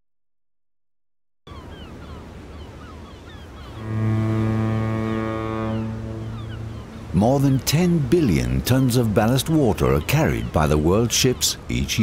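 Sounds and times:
waves washing: 0:01.8 - 0:12.0
ship's horn low note: 0:03.6 - 0:07.4.

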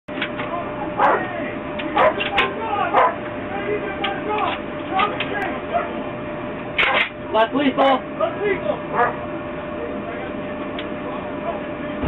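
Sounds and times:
dog barking: 0:01.0 - 0:01.3, 0:02.0 - 0:02.3, 0:02.9 - 0:03.2, 0:05.7 - 0:06.0, 0:08.9 - 0:09.2.

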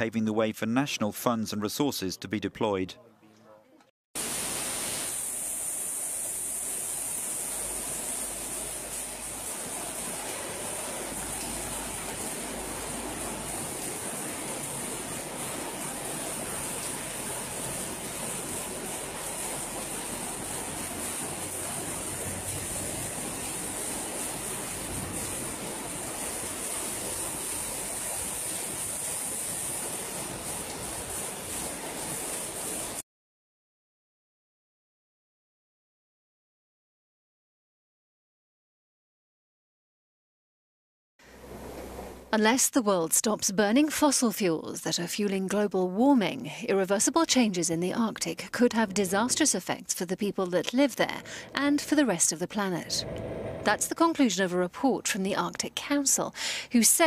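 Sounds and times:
floodwater rushing: 0:04.2 - 0:33.0, 0:50.6 - 0:54.3.

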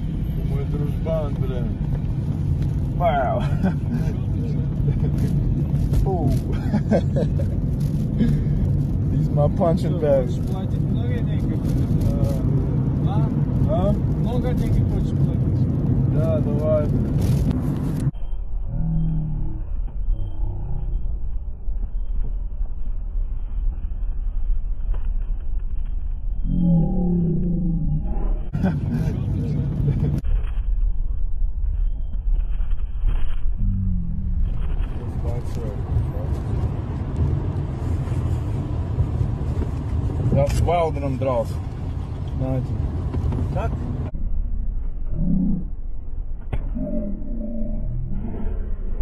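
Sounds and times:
low rumble inside car: 0:00.0 - 0:49.0
person laughing: 0:06.5 - 0:07.6, 0:28.5 - 0:29.3.

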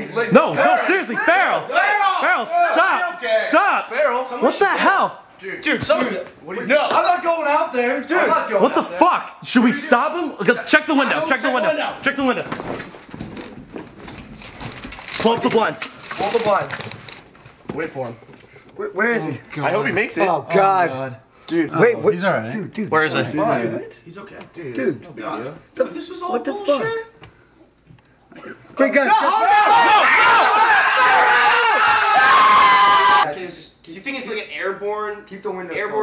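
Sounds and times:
young men shouting: 0:00.2 - 0:05.2, 0:28.8 - 0:33.3.

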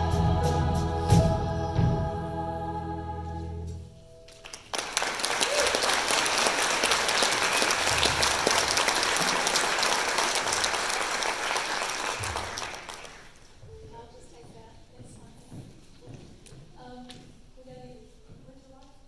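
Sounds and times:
audience applause: 0:04.3 - 0:13.4.

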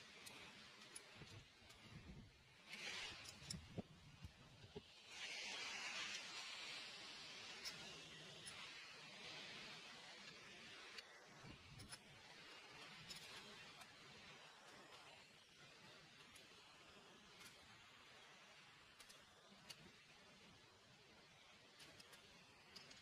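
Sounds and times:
soft hiss: 0:00.0 - 0:23.0.

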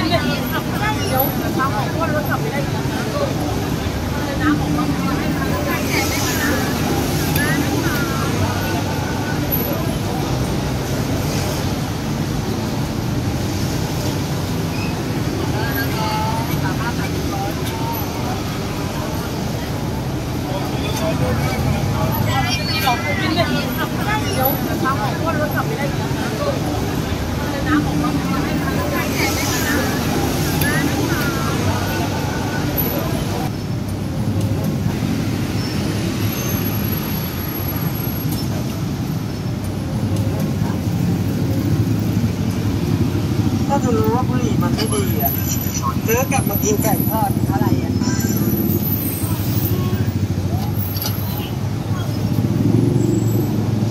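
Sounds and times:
crowd chatter: 0:00.0 - 0:53.9
road traffic rumble: 0:00.0 - 0:53.9.

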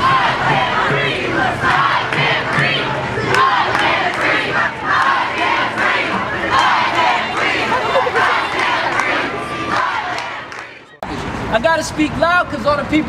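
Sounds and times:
crowd of protesters shouting: 0:00.0 - 0:11.0.

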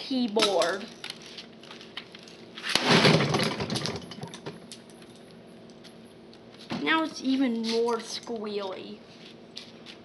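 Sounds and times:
equipment crashing down: 0:02.6 - 0:04.5.

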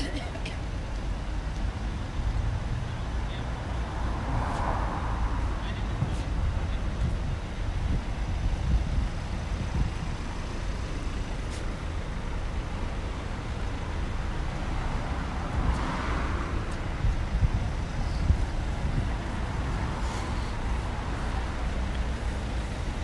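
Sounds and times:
idling traffic rumble: 0:00.0 - 0:23.0.

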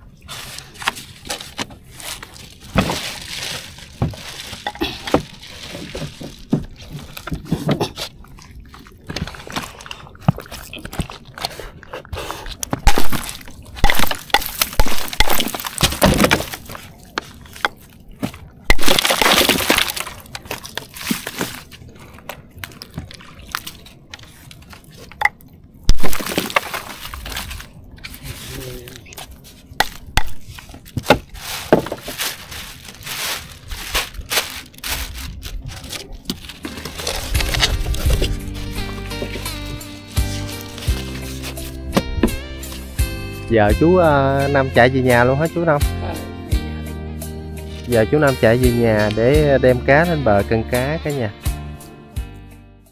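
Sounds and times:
ice cubes clinking and crunching: 0:00.3 - 0:11.4, 0:12.6 - 0:41.8.

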